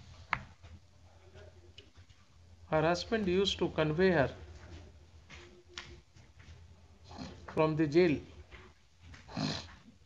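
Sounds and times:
man dictating: 7.5 - 8.3.

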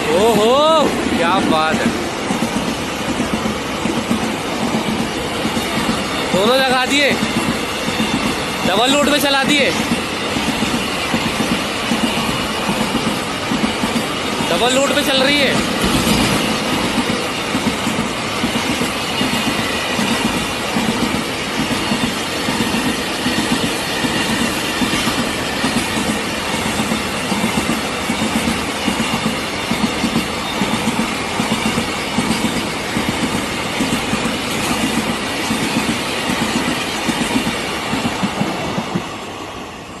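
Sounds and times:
train wagons clattering: 0.0 - 39.5
freight train wheels rumbling: 0.0 - 40.0.

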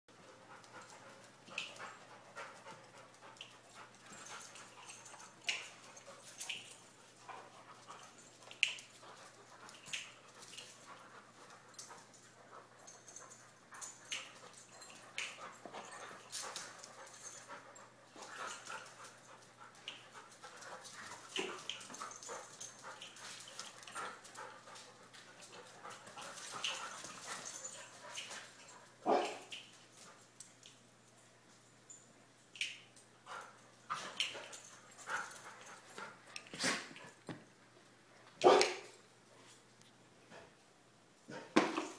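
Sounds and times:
dog panting: 0.1 - 29.0, 33.3 - 37.2.

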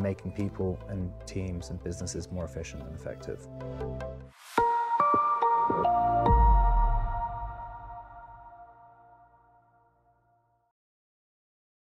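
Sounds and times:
electronic jingle chord: 4.6 - 9.5.

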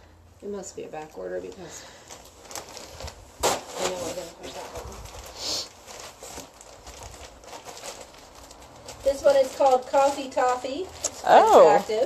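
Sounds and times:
plastic bags rustling and crinkling: 1.4 - 12.0.

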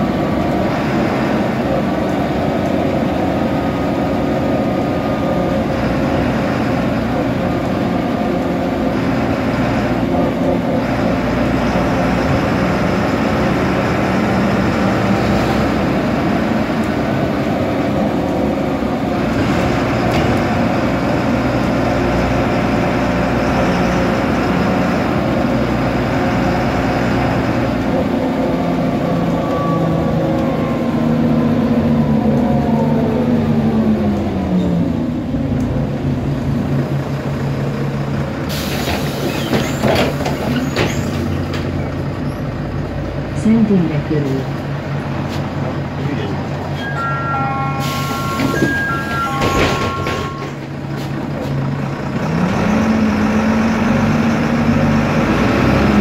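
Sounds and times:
bus diesel engine running: 0.0 - 56.0.

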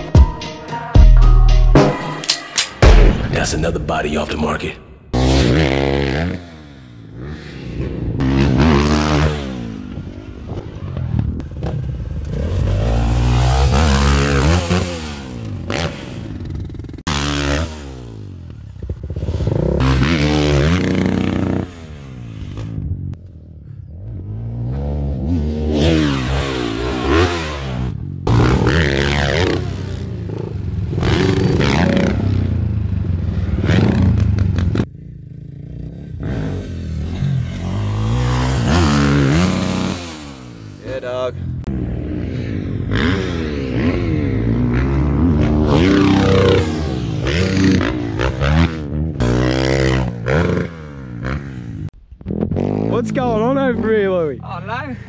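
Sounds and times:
dirt bike engine revving: 5.1 - 23.0, 23.9 - 54.3.

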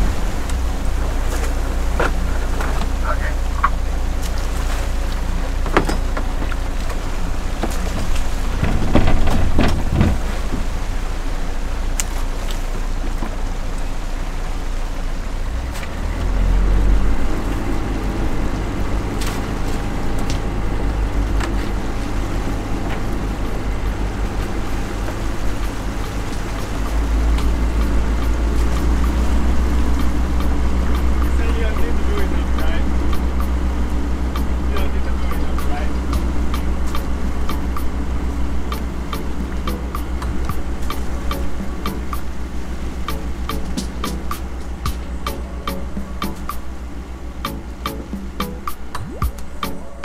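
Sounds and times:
boat engine rumbling: 0.0 - 50.0.

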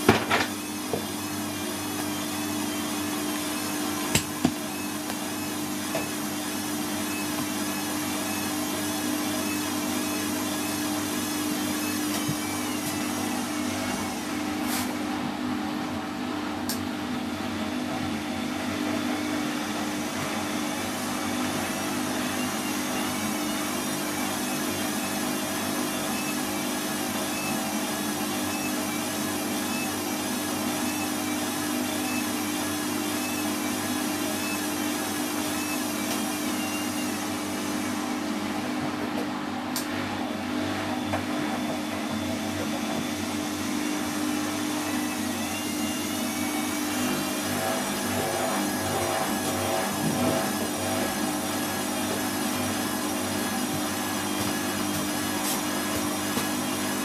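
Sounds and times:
washing machine hum and whine: 0.0 - 57.0.

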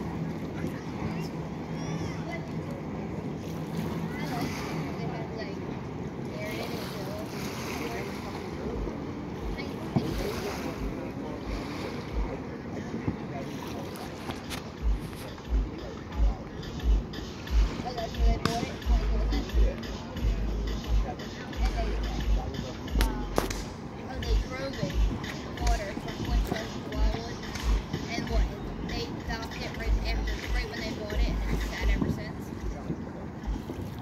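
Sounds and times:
people chattering: 0.0 - 34.0
wind noise on microphone: 0.0 - 34.0.

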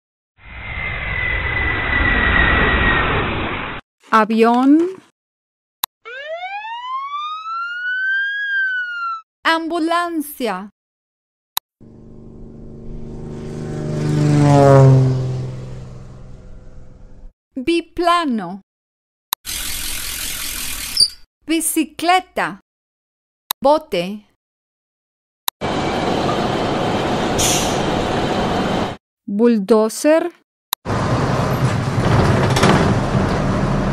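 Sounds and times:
ambulance siren wail rising: 6.0 - 9.2, 12.7 - 16.6
heavy diesel engine running: 11.8 - 14.2, 30.9 - 33.9
short hiss: 27.4 - 27.8.

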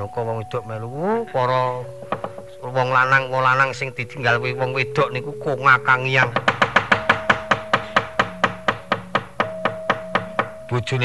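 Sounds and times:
faint steady held tone: 0.0 - 11.0
wooden mallet knocking on chest: 1.8 - 2.7, 5.4 - 10.7.

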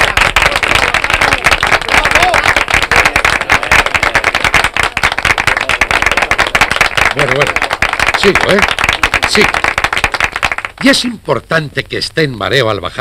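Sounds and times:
people clapping: 0.0 - 11.1.

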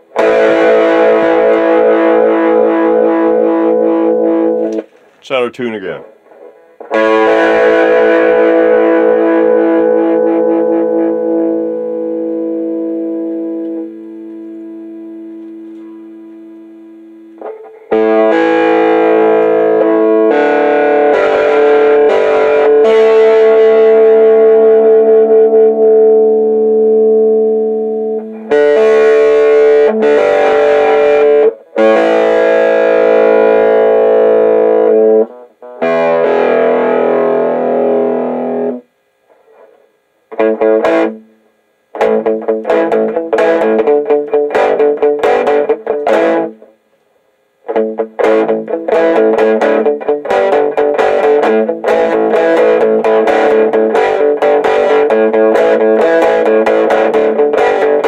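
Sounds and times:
distorted electric guitar chords: 0.0 - 58.0.

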